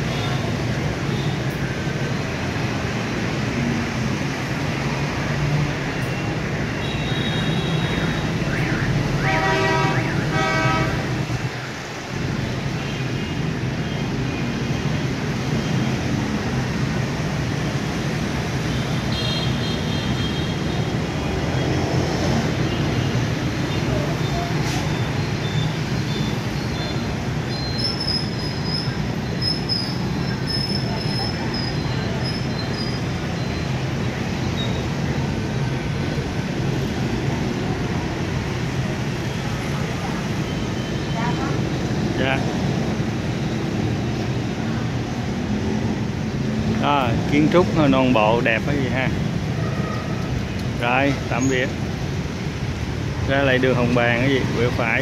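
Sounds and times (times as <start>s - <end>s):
city street traffic din: 0.0s - 55.0s
car horn honking: 6.8s - 11.3s.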